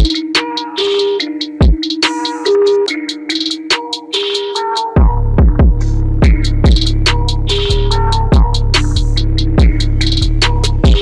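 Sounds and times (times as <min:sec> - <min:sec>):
electronic music: 0:00.0 - 0:11.0
kick drum hits: 0:01.6 - 0:01.8, 0:05.0 - 0:06.8, 0:08.3 - 0:08.6
deep sustained bass: 0:05.0 - 0:11.0.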